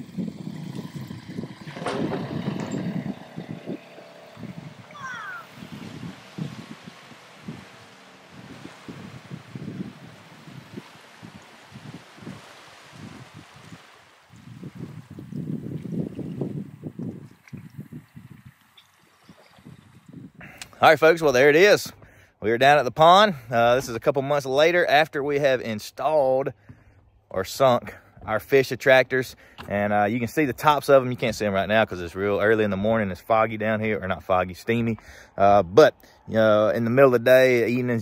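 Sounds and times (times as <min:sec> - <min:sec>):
faint wash of water: 0:00.0 - 0:20.1
wind buffeting microphone: 0:00.0 - 0:22.2.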